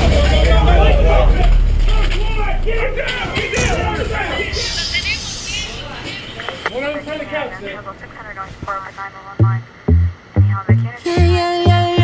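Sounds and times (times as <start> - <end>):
heavy bass drum beats: 0.0 - 4.8, 9.4 - 12.0
person singing over light backing: 10.8 - 12.0.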